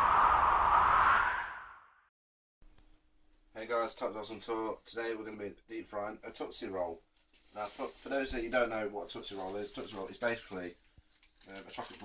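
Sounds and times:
whoosh rush of noise: 0.0s - 2.0s.

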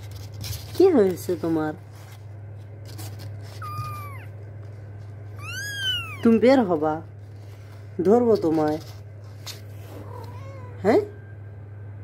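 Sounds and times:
steady low hum: 0.0s - 12.0s
kittens mewing: 3.5s - 4.5s, 5.4s - 6.5s.

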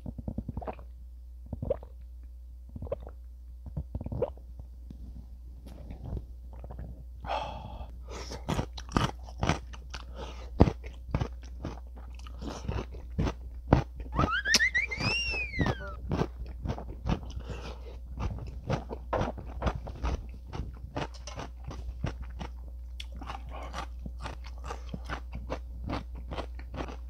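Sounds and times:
crunching and chewing pickled radish: 0.0s - 14.2s, 16.0s - 27.0s
short rising and falling pitched sound: 14.1s - 16.0s.

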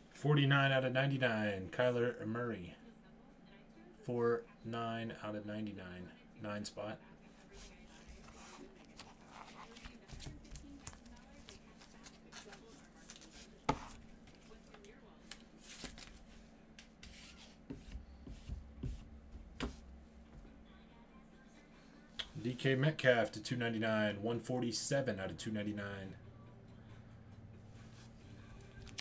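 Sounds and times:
steady low hum: 1.3s - 29.0s
plastic packaging clicks and rustles: 28.8s - 29.0s.

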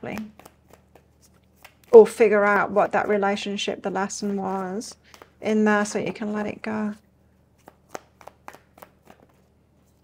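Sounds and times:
cards being shuffled: 0.0s - 2.1s, 4.2s - 5.4s, 7.6s - 10.0s.

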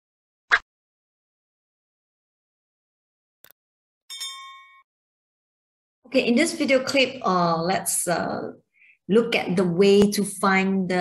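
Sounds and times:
bright notification ding: 4.1s - 4.8s.

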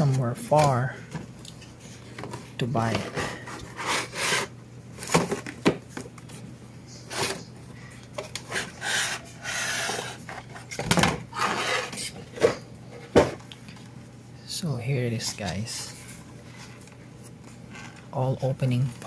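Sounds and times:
cardboard rubbing and scraping: 3.2s - 4.5s.

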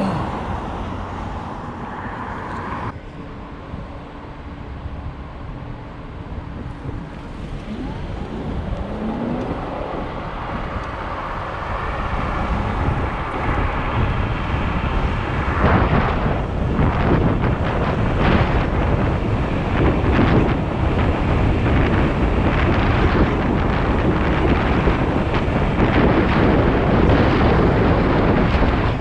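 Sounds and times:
wind buffeting microphone: 4.7s - 29.0s.

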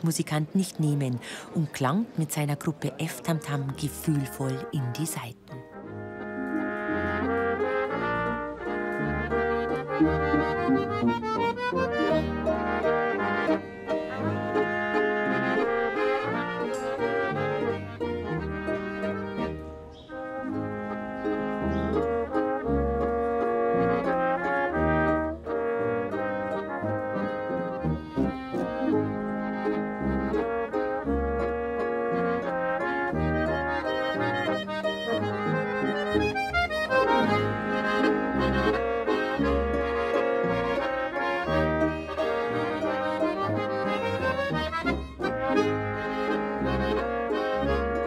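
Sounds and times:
accordion: 0.0s - 48.0s
violins: 0.0s - 48.0s
double bass line: 3.1s - 48.0s
harp: 3.2s - 48.0s
trombones and flugelhorn melody: 3.4s - 48.0s.

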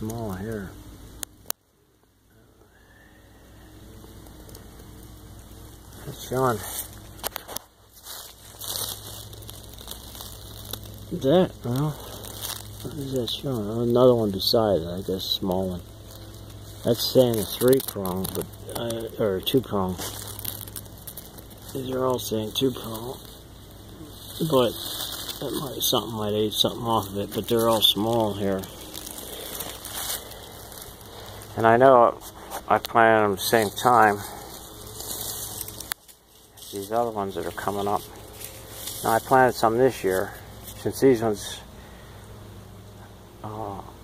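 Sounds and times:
leaf litter rustling and crackling: 0.0s - 1.4s, 2.7s - 44.0s.

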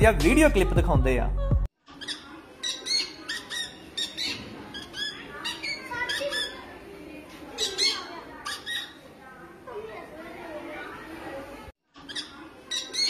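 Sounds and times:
boys imitating parrot squawks: 2.0s - 6.8s, 7.5s - 9.0s.

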